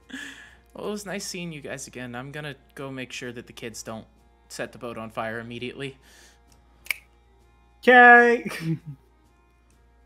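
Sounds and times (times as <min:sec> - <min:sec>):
sharp click: 0:06.8 - 0:07.1
man speaking: 0:07.9 - 0:08.7.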